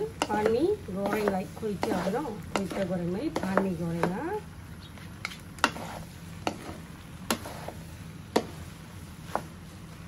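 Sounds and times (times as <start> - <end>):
spatulas knocking on wok: 0.0 - 4.4, 8.3 - 8.6
frying sizzle: 0.0 - 10.0.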